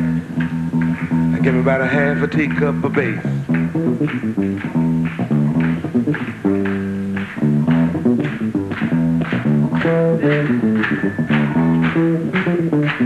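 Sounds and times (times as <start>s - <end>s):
electric bass funk riff: 0.0s - 13.0s
sharp clicks keeping time: 0.4s - 13.0s.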